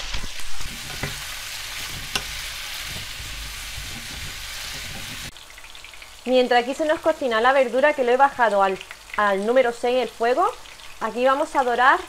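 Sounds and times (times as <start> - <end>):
wooden spatula stirring: 0.0 - 5.3
vegetables sizzling in oil: 0.0 - 12.0.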